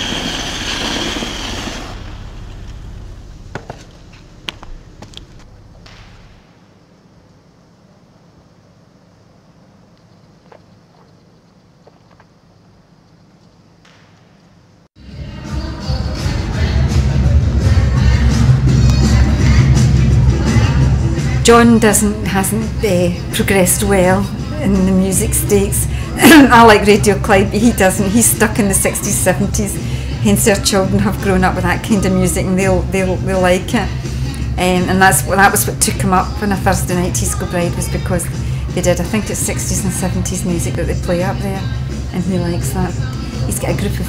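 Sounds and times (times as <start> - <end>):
ice-skate blades hissing: 0.0 - 6.4
loud music with heavy bass: 15.0 - 21.4.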